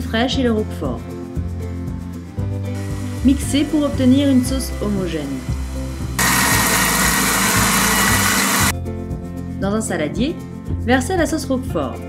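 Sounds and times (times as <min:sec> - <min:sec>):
food processor whirring: 0:05.2 - 0:08.7.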